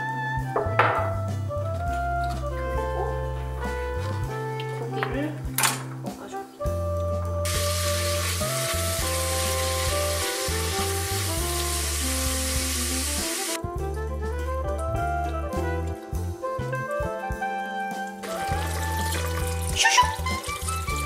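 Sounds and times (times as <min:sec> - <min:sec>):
meat sizzling in hot oil: 0:07.5 - 0:13.6, 0:18.3 - 0:21.0.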